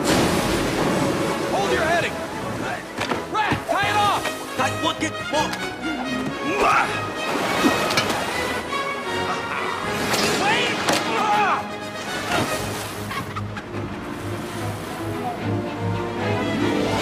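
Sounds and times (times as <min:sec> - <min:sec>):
film score music: 0:00.0 - 0:17.0
man shouting excitedly: 0:03.3 - 0:05.5, 0:10.4 - 0:11.7.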